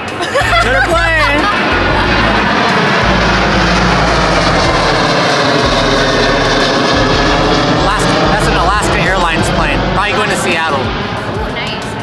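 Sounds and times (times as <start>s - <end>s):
jet airliner flying over: 0.0s - 12.0s.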